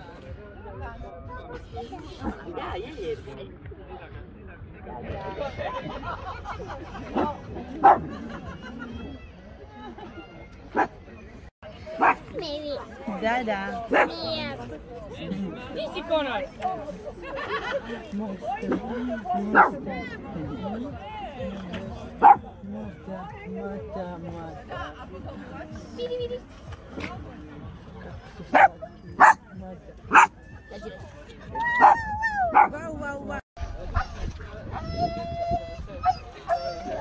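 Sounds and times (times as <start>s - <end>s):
puppies barking: 28.5s - 29.4s, 30.1s - 30.4s, 31.8s - 32.8s
puppy yelping: 31.7s - 32.8s
puppy whining: 36.0s - 37.0s.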